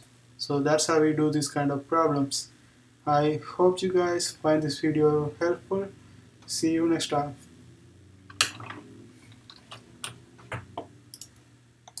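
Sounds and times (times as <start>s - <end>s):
faint low hum: 0.0s - 12.0s
computer mouse clicks: 11.1s - 12.0s.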